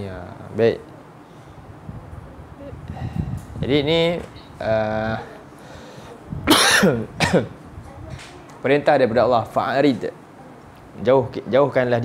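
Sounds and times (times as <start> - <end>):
man coughing: 6.5 - 7.6.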